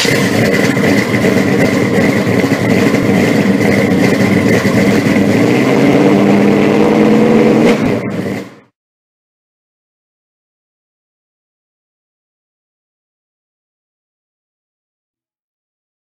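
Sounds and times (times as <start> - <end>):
car engine revving: 0.0 - 8.7
steady whine: 0.0 - 8.7.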